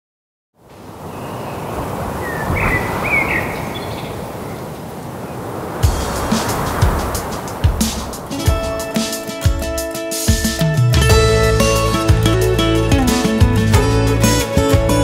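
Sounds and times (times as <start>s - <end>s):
low drum hits: 5.8s - 12.4s.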